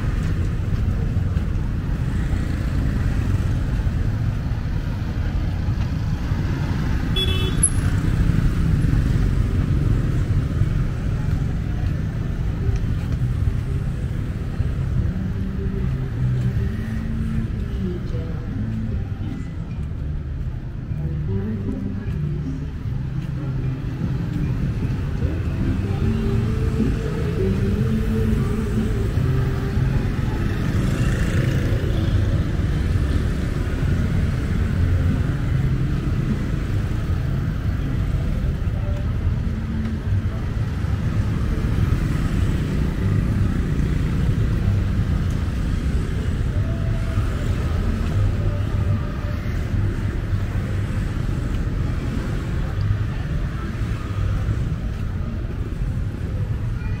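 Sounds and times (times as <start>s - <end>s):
road traffic rumble: 0.0s - 57.0s.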